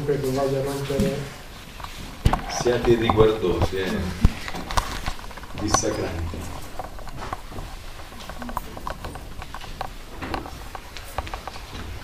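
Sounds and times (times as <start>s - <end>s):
light irregular taps and knocks: 0.9s - 12.0s.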